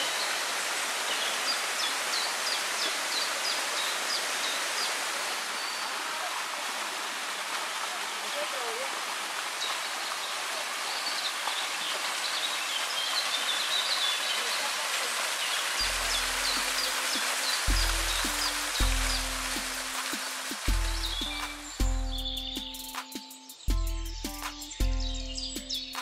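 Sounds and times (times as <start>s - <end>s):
waterfall rushing over rock: 0.0s - 21.8s
birds chirping: 0.0s - 26.0s
music with deep bass notes: 15.8s - 16.8s, 17.7s - 20.0s, 20.7s - 23.0s, 23.7s - 26.0s.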